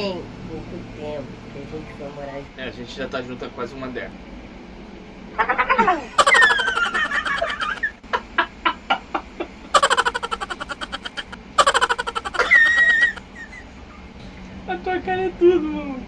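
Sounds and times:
man and woman laughing: 5.5s - 13.9s.

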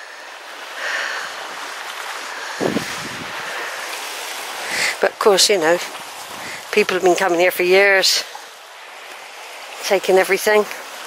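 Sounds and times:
sea waves on rocky shore: 0.0s - 11.0s.

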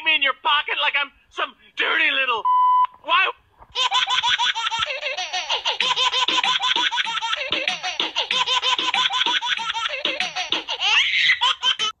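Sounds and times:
high-pitched giggling laughter: 3.8s - 12.0s.

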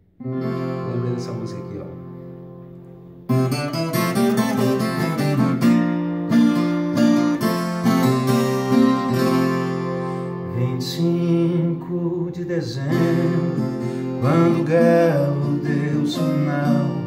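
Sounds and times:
folk guitar chords: 0.0s - 17.0s.

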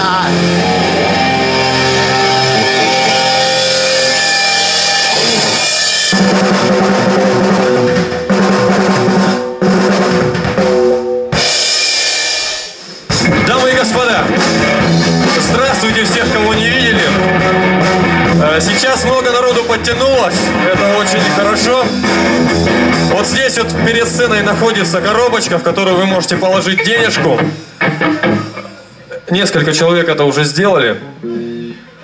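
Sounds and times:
drum kit: 0.0s - 29.0s
electric guitar: 0.0s - 29.3s, 31.0s - 32.0s.

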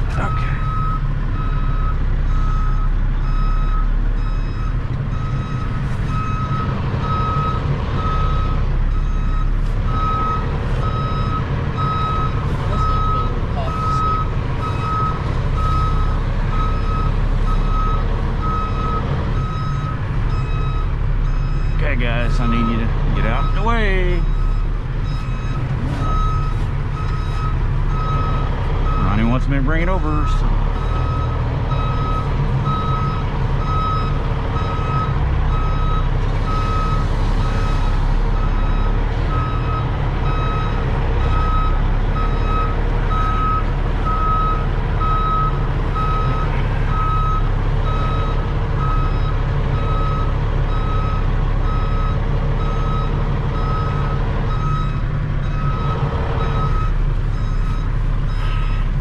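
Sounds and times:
truck backup alarm beeping: 0.0s - 59.0s
truck engine rumble: 0.0s - 59.0s.

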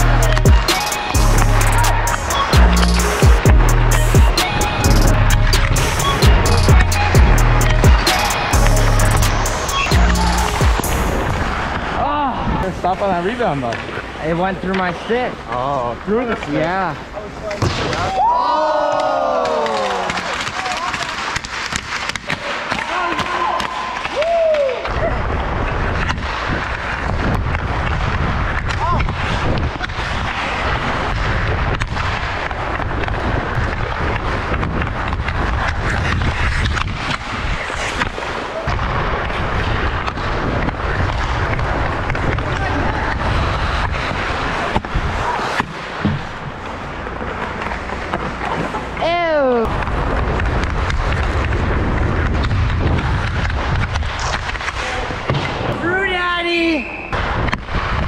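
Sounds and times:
skates scraping on ice: 12.9s - 18.0s, 19.2s - 58.0s
stick hitting puck: 19.5s - 24.2s
wind rumble on microphone: 24.9s - 45.4s, 49.6s - 55.3s, 57.2s - 58.0s.

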